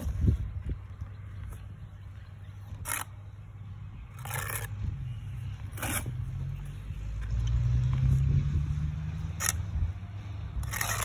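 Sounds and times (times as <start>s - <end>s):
trowel scraping mortar on brick: 2.7s - 3.2s, 4.1s - 4.9s, 5.6s - 6.2s, 10.6s - 11.0s.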